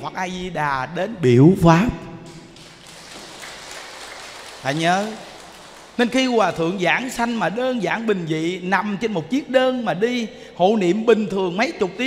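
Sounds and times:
man speaking: 0.0s - 2.1s, 4.6s - 5.2s, 6.0s - 12.0s.

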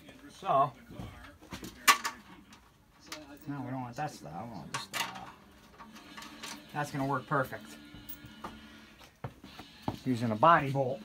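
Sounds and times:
hands handling metal hardware: 1.4s - 3.6s, 4.6s - 7.1s.

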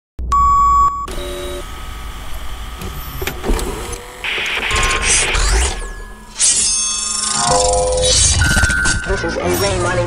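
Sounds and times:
loud electronic beep: 4.3s - 9.3s.

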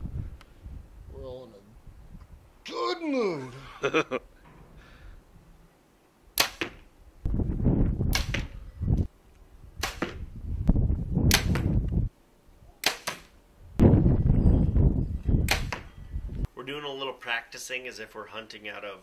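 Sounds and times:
bow string snapping: 6.4s - 6.8s, 8.1s - 8.6s, 9.8s - 10.2s, 11.3s - 12.0s, 12.8s - 13.3s, 15.4s - 15.9s
arrow striking target: 6.4s - 6.9s, 8.0s - 8.6s, 9.8s - 10.3s, 11.2s - 11.8s, 12.8s - 14.0s, 15.4s - 15.9s.

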